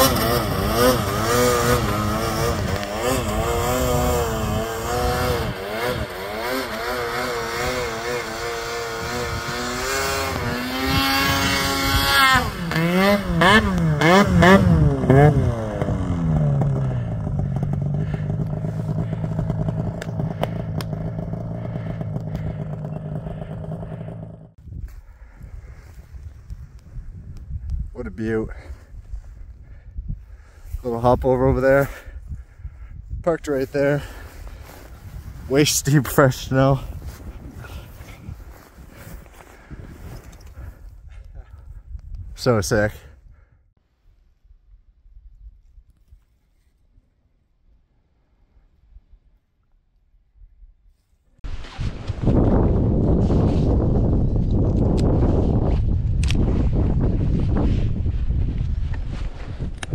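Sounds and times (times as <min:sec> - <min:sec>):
snowmobile engine revving and idling: 0:00.0 - 0:24.6, 0:33.3 - 0:41.7
footsteps crunching through snow: 0:36.8 - 0:40.2.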